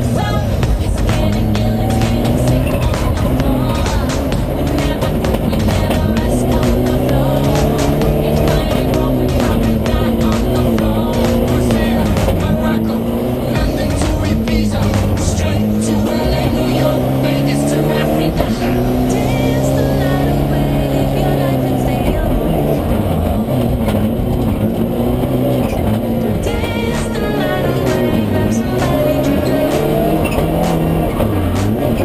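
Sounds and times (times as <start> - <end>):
background music: 0.0 - 32.0
race car engine revving: 0.0 - 32.0.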